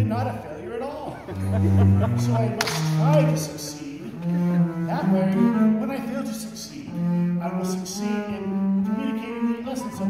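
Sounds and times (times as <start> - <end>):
bowed double bass: 0.0 - 10.0.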